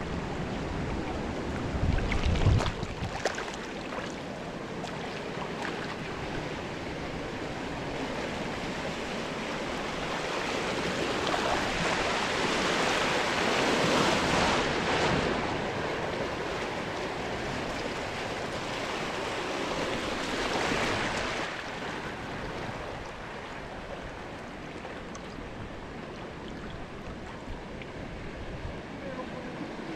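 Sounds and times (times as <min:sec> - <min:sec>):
water rushing and splashing: 0:00.1 - 0:29.9.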